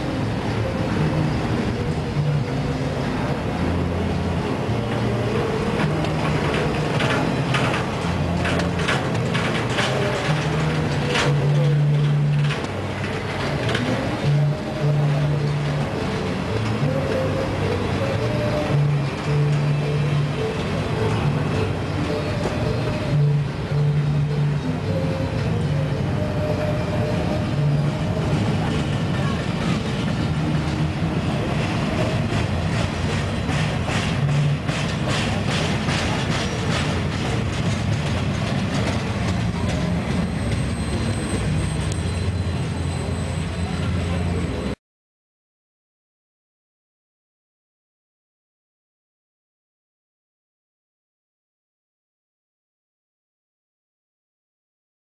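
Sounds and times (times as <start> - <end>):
train wheels rumbling on rails: 0.0 - 44.8
clicks over rail joints: 5.8 - 14.2.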